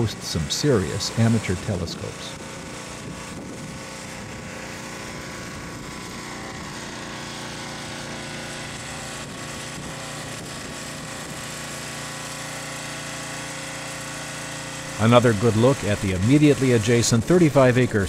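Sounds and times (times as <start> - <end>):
pressure washer engine running: 0.0 - 18.0
water spraying onto concrete: 0.0 - 18.0.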